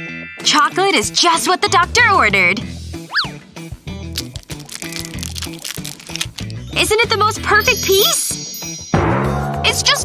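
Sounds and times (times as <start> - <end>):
background music: 0.0 - 10.0
wrapper crinkling: 4.1 - 6.8.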